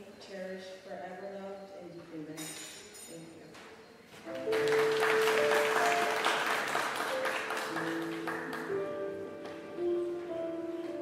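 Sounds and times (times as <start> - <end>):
applause: 4.3 - 8.9
music with long held notes: 4.3 - 11.0.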